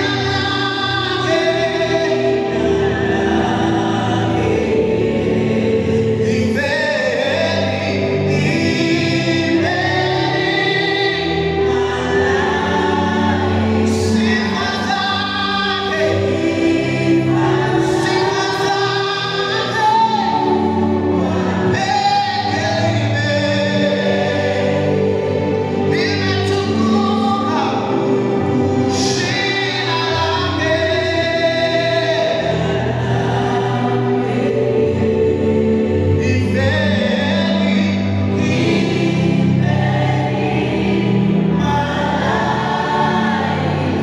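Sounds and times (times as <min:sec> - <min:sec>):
man singing into a microphone: 0:00.0 - 0:04.8, 0:05.9 - 0:34.1, 0:36.1 - 0:40.5
backing singers: 0:00.0 - 0:44.0.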